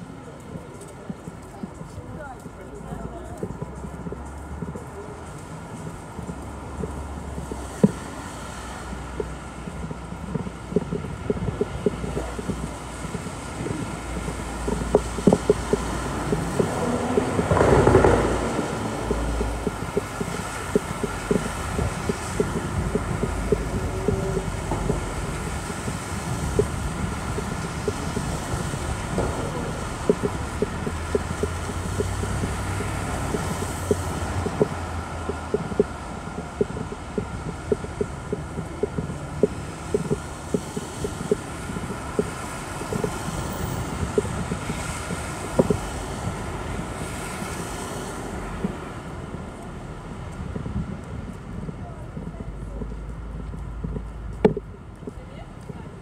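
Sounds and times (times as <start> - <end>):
footsteps on paving stones: 0.0 - 56.0
traffic rumble: 0.0 - 56.0.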